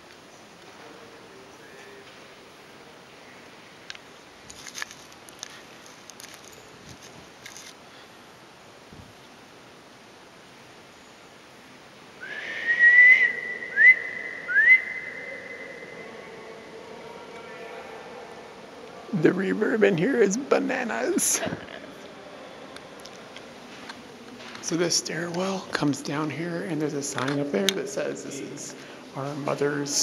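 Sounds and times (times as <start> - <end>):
person whistling with echo: 12.2 - 16.2.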